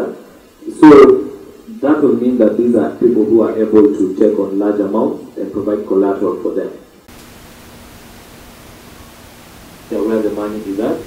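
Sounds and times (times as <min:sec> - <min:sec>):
man talking: 0:00.0 - 0:06.8, 0:09.9 - 0:11.0
microphone hiss and hum: 0:00.0 - 0:11.0.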